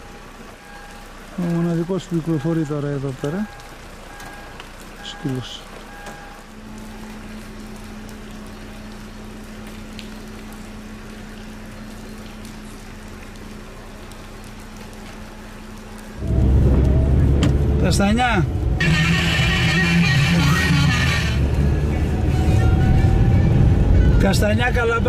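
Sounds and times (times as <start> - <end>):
car engine and wet-road rumble: 0.0 - 25.0.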